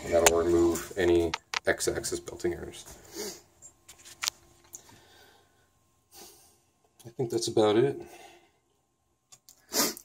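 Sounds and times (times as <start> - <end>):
soft breath: 4.8 - 6.7.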